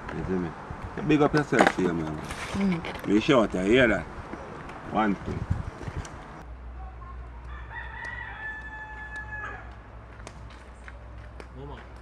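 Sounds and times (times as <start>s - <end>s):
rooster crowing: 7.5s - 9.8s.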